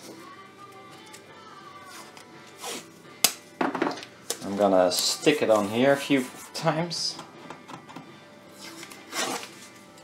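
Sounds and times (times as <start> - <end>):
faint background music: 0.0 - 10.0
tape ripping: 8.6 - 9.7.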